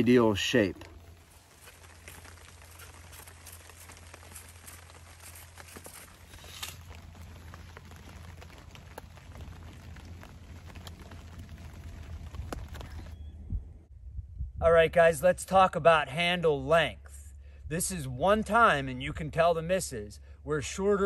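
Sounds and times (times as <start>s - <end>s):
rain pattering on a tarp: 0.0s - 13.2s.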